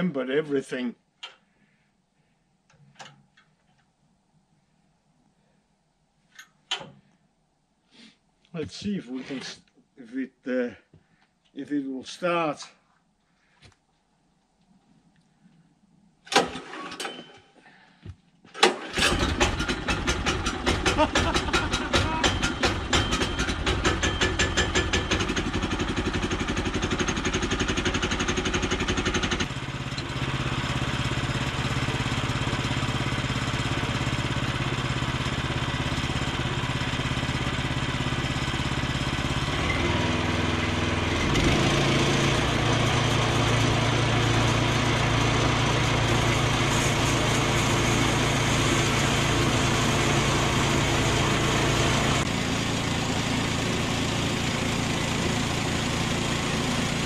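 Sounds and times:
small gasoline engine running: 0:18.6 - 0:57.0
band saw blade cutting log: 0:19.3 - 0:25.1.

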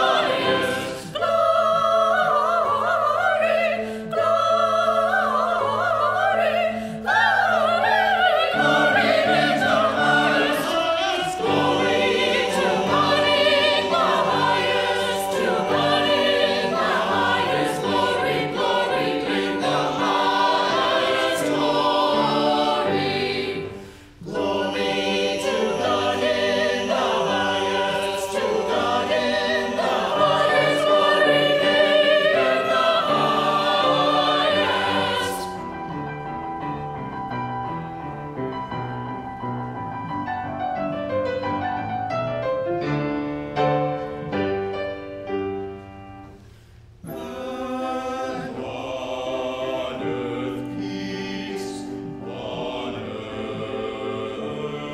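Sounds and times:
mixed choir singing: 0:00.0 - 0:35.8, 0:47.0 - 0:54.9.

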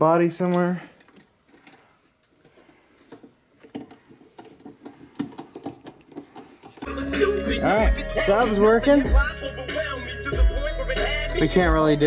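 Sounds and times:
hand tools clicking on metal fittings: 0:03.0 - 0:06.9
bass-heavy music from car speakers: 0:06.8 - 0:12.0.

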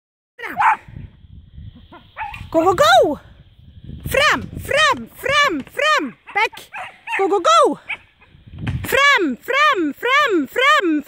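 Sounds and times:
dog yelping and barking: 0:00.4 - 0:00.8, 0:01.9 - 0:02.5, 0:06.3 - 0:08.2.

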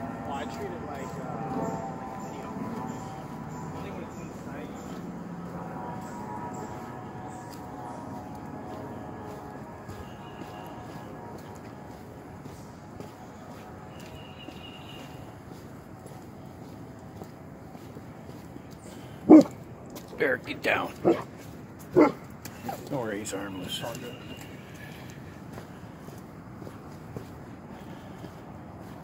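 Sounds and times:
outdoor background noise: 0:00.0 - 0:29.0
dog barking: 0:19.3 - 0:19.6, 0:21.0 - 0:21.3, 0:21.9 - 0:22.8.

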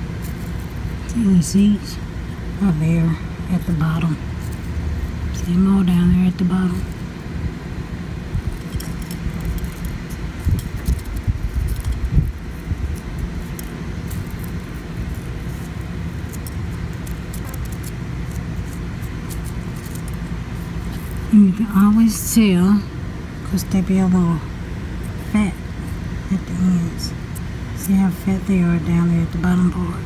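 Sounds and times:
dried seed heads crackling: 0:00.0 - 0:02.6, 0:03.4 - 0:07.3, 0:07.9 - 0:22.5
low background rumble: 0:00.0 - 0:30.0.

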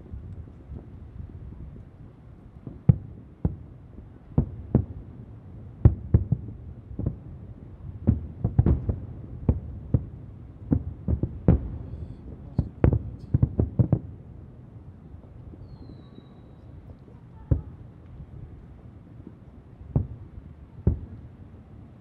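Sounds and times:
distant fireworks booming: 0:00.0 - 0:22.0.

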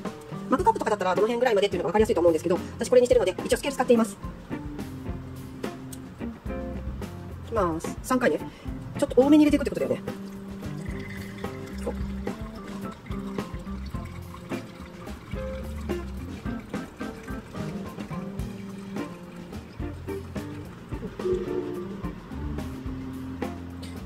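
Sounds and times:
background music: 0:00.0 - 0:24.0
water pouring onto coffee grounds: 0:09.0 - 0:22.1.

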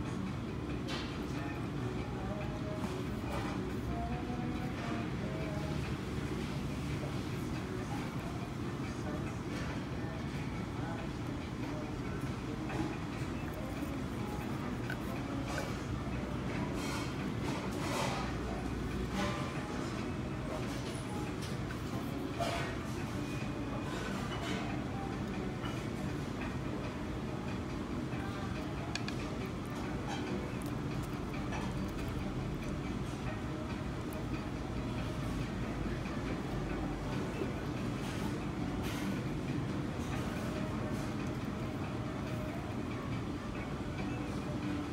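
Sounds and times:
restaurant room noise: 0:00.0 - 0:44.9.

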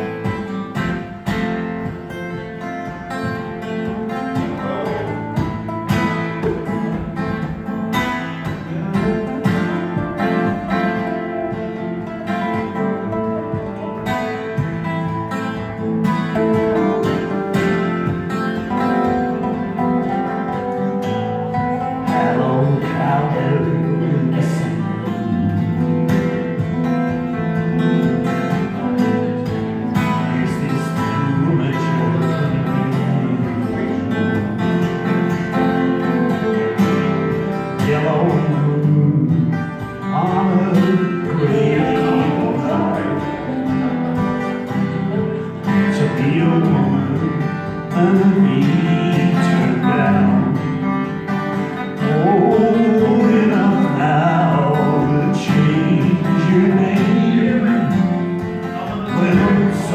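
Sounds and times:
acoustic guitars playing: 0:00.0 - 0:59.9
man singing: 0:02.0 - 0:07.7, 0:15.1 - 0:59.9.

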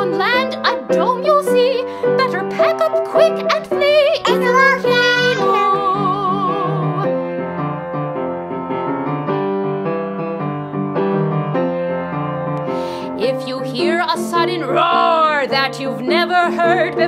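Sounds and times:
piano chords: 0:00.0 - 0:17.0.

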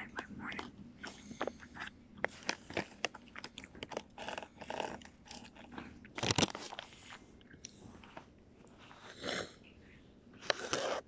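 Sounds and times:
person chewing something crunchy: 0:00.0 - 0:09.6, 0:10.4 - 0:11.0.

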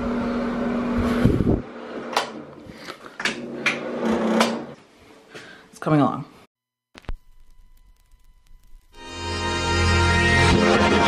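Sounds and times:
fan-like hum with held tone: 0:00.0 - 0:03.7.

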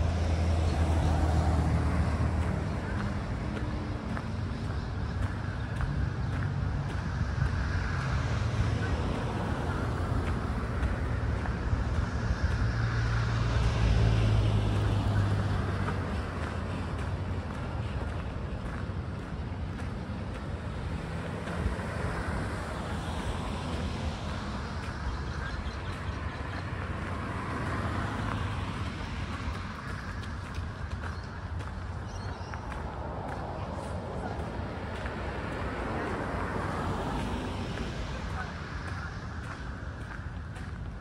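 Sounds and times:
passing cars rumbling: 0:00.0 - 0:41.0
vehicle engine hum approaching: 0:00.0 - 0:41.0.

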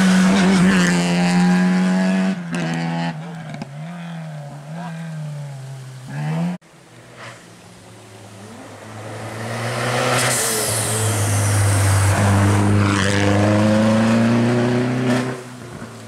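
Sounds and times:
rally car accelerating past: 0:08.3 - 0:15.4.

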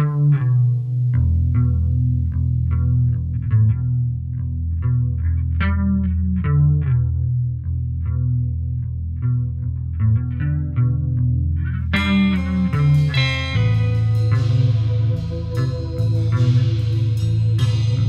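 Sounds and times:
chorus electric guitar picking: 0:00.0 - 0:18.0
fuller bright guitar: 0:00.0 - 0:18.0
steady bass line: 0:00.0 - 0:18.0.

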